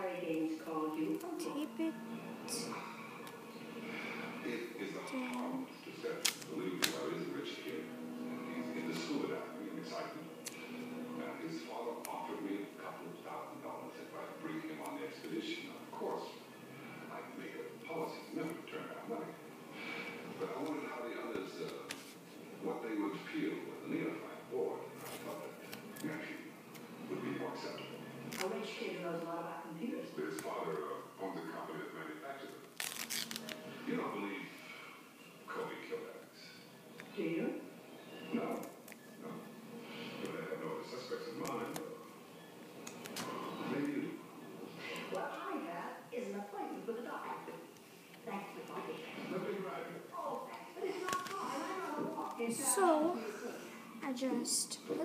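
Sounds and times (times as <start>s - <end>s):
television dialogue: 0.0s - 55.0s
duct tape snapping: 6.1s - 7.0s, 32.7s - 33.6s.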